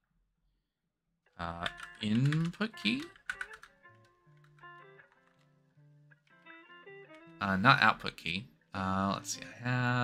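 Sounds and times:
quiet background music: 1.3s - 10.0s
keyboard typing: 1.4s - 5.5s.

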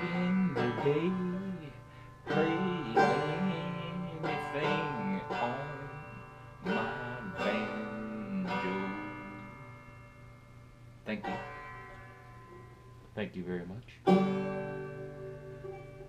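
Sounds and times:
banjo strummed chords: 0.0s - 16.0s.

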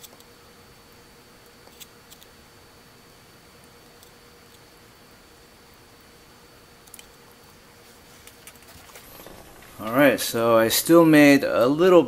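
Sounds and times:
steady low hiss: 0.3s - 12.0s
small plastic clicks and handling: 1.6s - 2.3s, 6.8s - 7.2s.

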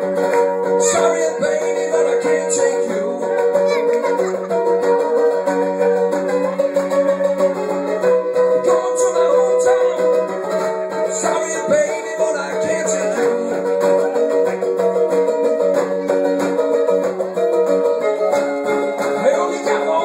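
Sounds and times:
mandolin picking solo: 0.0s - 20.0s.

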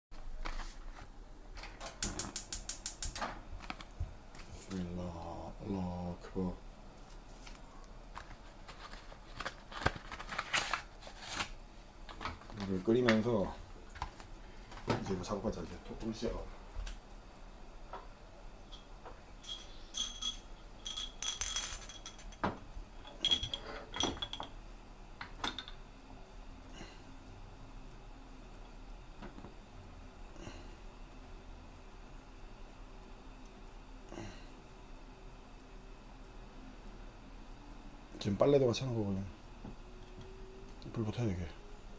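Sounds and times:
gas cooker igniter clicking: 1.8s - 3.4s
glass bottles clinking on metal grate: 18.7s - 24.6s.

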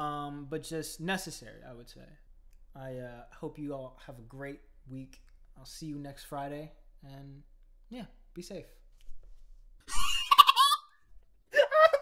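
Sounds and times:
man laughing with high squeal: 9.9s - 10.9s, 11.5s - 12.0s.

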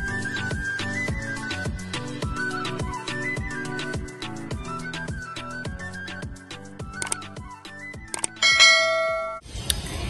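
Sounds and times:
quick clicks: 7.0s - 7.3s, 8.1s - 8.4s
notification bell ding: 8.4s - 9.4s.

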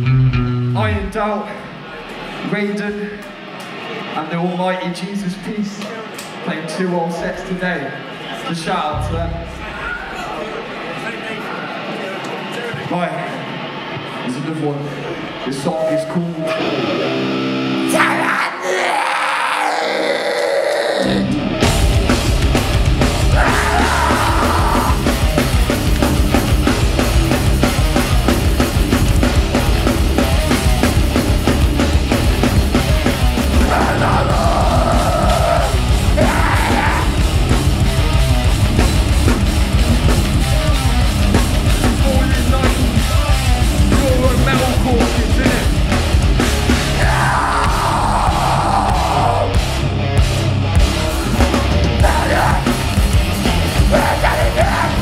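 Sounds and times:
hardcore band playing live: 0.0s - 4.2s, 7.4s - 55.0s
ringing guitar: 15.7s - 18.0s
person yelling: 17.9s - 21.3s, 23.4s - 25.1s, 33.6s - 37.2s, 47.0s - 49.6s.

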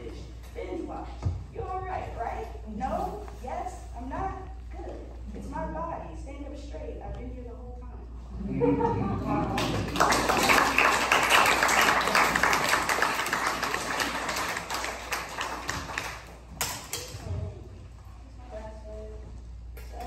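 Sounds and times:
audience applauding: 9.4s - 16.4s.

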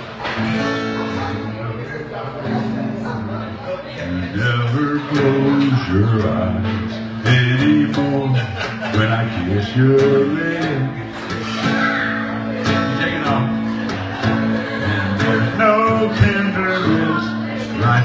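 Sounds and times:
acoustic guitar strumming: 0.0s - 18.0s
man singing: 4.0s - 11.6s, 14.8s - 18.0s.

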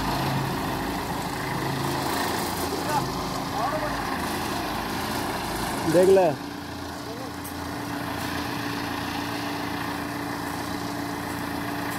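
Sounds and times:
diesel engine idling: 0.0s - 11.9s.

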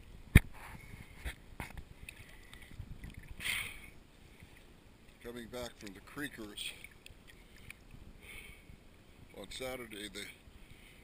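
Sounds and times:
water lapping and splashing: 0.4s - 8.9s.

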